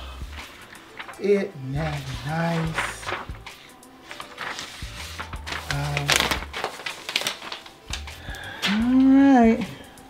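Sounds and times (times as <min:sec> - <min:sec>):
paper rustling and crinkling: 0:00.4 - 0:08.8.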